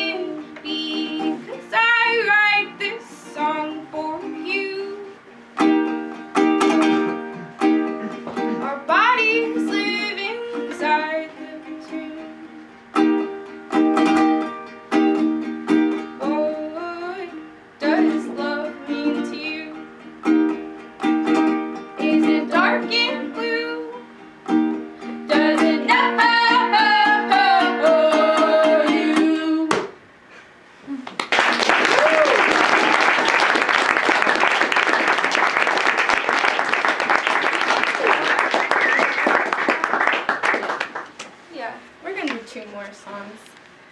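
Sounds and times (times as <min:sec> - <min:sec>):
two women singing: 0:00.0 - 0:05.1, 0:08.6 - 0:12.4, 0:16.2 - 0:19.8, 0:22.0 - 0:24.1, 0:25.3 - 0:29.9
ukulele strumming: 0:00.0 - 0:30.0
audience applauding: 0:31.0 - 0:41.2.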